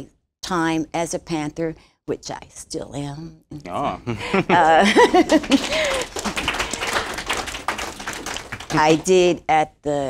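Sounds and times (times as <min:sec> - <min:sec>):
applause: 0:04.9 - 0:09.3.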